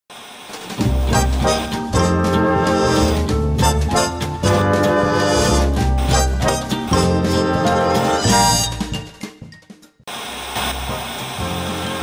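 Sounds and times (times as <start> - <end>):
television static hiss: 0.1 - 0.9, 10.1 - 12.0
low music tones: 0.8 - 10.0.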